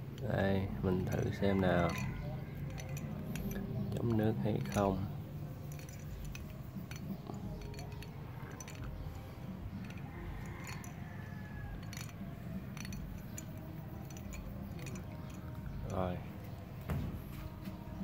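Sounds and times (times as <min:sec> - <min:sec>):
metal watch clinking against glass mug: 0:00.0 - 0:16.6.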